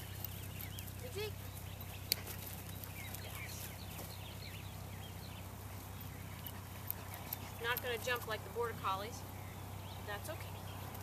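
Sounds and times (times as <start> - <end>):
small birds chirping: 0.0 - 11.0
steady low hum: 0.0 - 11.0.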